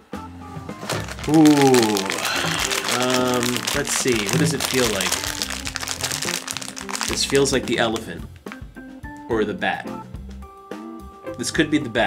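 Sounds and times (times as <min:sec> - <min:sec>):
background music: 0:00.0 - 0:12.0
foil packet crinkling: 0:00.8 - 0:08.6.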